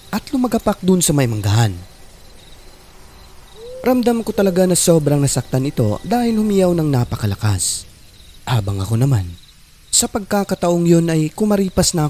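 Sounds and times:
crickets chirping: 0:00.0 - 0:12.0
narration: 0:03.6 - 0:12.0.

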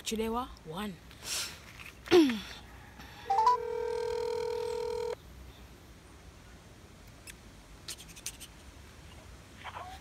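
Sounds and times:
phone ringback tone: 0:03.2 - 0:05.2.

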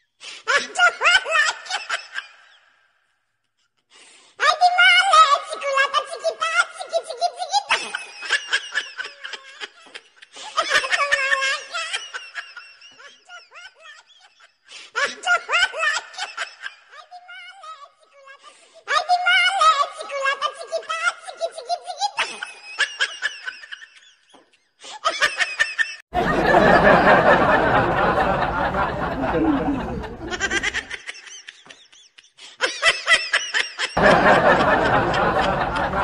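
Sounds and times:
person laughing hard: 0:24.9 - 0:36.0.

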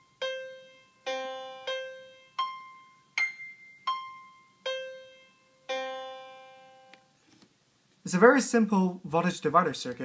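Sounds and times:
synthesized piano notes: 0:00.0 - 0:07.0.

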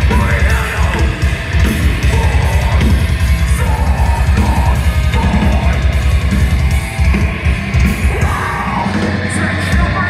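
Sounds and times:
metal band playing live: 0:00.0 - 0:10.0
shouted vocals: 0:02.0 - 0:06.0, 0:08.0 - 0:10.0.

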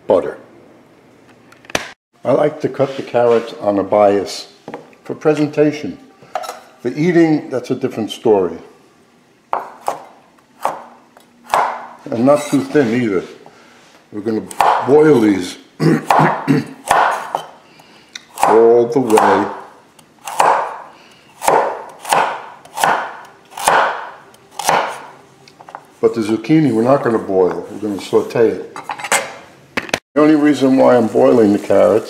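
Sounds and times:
knife chopping carrot on board: 0:09.5 - 0:10.9, 0:11.5 - 0:11.9, 0:14.5 - 0:15.0, 0:16.1 - 0:17.5, 0:18.3 - 0:20.8, 0:21.4 - 0:25.1
knife cutting on wooden board: 0:21.4 - 0:24.0.

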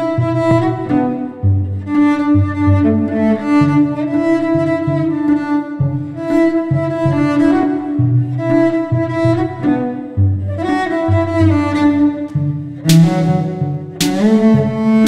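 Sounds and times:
bowed cello melody: 0:00.0 - 0:15.0
looped cello bass line: 0:00.0 - 0:15.0.

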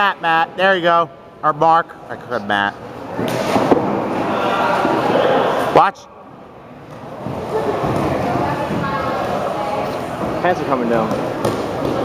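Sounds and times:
echoing background voices: 0:04.2 - 0:12.0.

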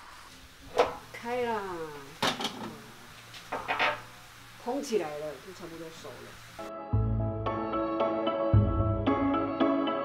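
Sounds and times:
faint steady hum: 0:00.0 - 0:06.7
metallic clatter of steamer: 0:00.6 - 0:01.2, 0:03.4 - 0:04.2.

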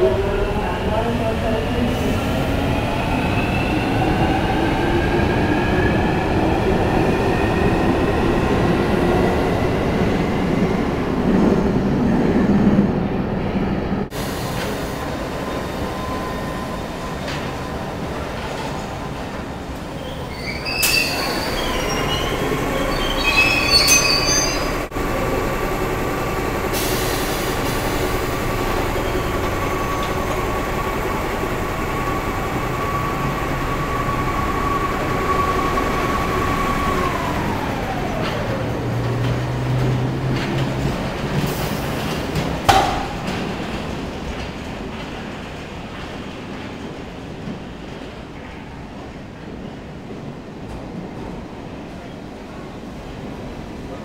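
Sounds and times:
train running past: 0:00.0 - 0:54.0
high wheel squeals: 0:20.0 - 0:24.9.

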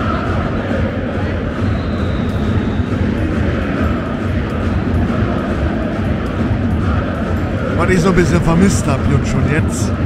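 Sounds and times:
stadium crowd singing: 0:00.0 - 0:10.0.

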